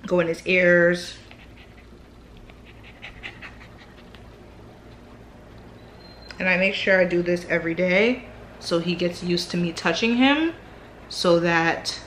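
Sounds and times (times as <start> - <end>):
puppy panting: 1.0 - 5.3.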